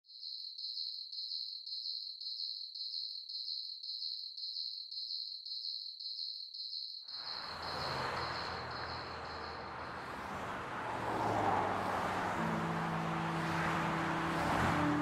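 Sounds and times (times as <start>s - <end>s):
cricket chirping: 0.1s - 10.5s
low traffic rumble: 7.4s - 15.0s.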